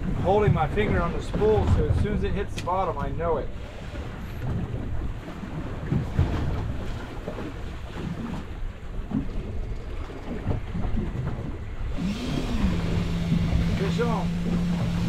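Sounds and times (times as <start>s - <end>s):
waves slapping boat hull: 0.0s - 15.0s
wind buffeting microphone: 0.0s - 15.0s.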